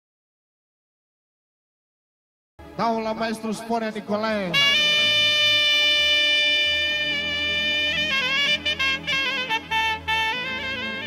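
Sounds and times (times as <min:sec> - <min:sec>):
low accompaniment: 0:02.6 - 0:11.0
saxophone long note: 0:04.5 - 0:11.0.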